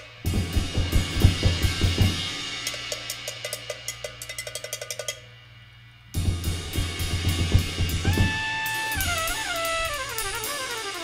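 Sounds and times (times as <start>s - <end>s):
loud drum hit: 0.3s - 2.6s, 6.2s - 10.6s.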